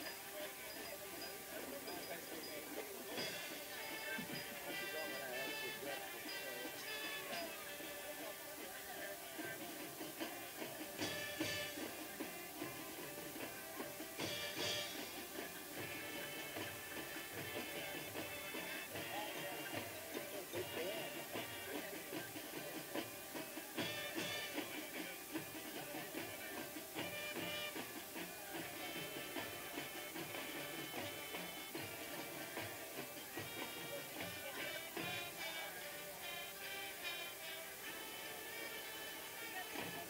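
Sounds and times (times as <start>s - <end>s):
drum strokes: 0.0s - 40.0s
wind instruments holding chords: 0.0s - 40.0s.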